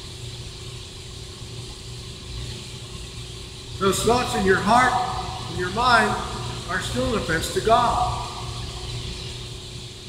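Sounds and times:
steady low hum: 0.0 - 10.0
man's voice: 3.8 - 8.6.

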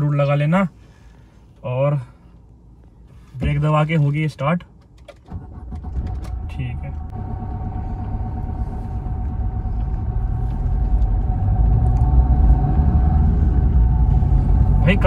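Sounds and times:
diesel engine rumble: 0.0 - 15.0.

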